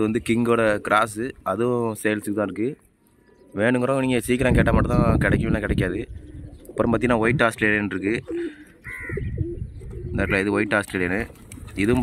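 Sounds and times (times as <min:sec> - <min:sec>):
pigeons cooing: 0:03.1 - 0:12.0.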